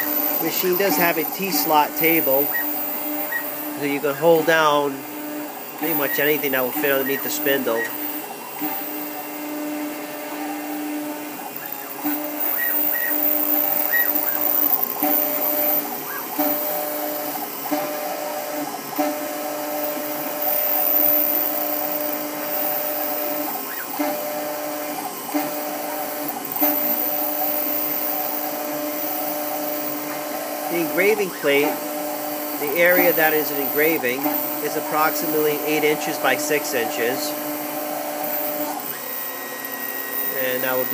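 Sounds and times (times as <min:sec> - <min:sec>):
two-pitch machine whine: 0:00.0 - 0:18.1, 0:30.7 - 0:40.9
engraving machine motor whir: 0:00.0 - 0:40.9.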